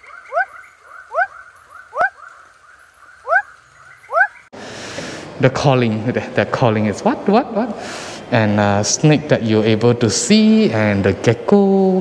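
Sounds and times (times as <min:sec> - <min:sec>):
frog calling: 0:00.0 - 0:04.5.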